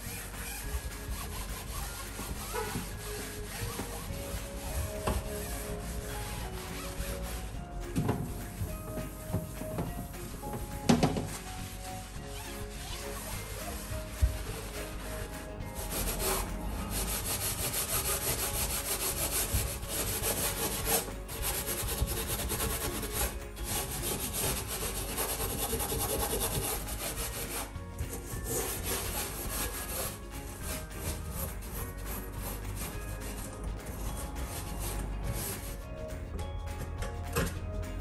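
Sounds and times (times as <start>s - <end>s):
scouring pad scrubbing metal: 0.0s - 35.8s.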